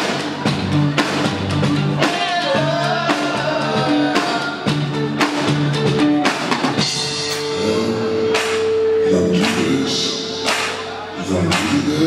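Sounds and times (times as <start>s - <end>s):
live rock band: 0.0s - 12.0s
man singing: 2.0s - 4.8s, 7.4s - 8.4s, 9.0s - 10.5s, 11.2s - 12.0s.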